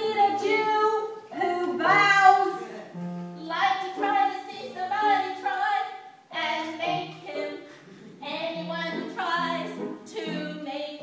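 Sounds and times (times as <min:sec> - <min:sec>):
children singing: 0:03.6 - 0:11.0.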